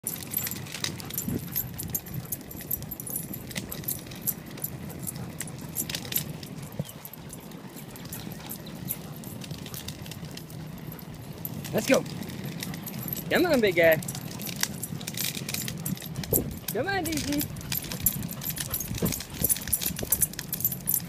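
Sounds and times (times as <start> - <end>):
dog tags jingling: 0.0 - 21.0
low rumble of moving on pavement: 0.0 - 21.0.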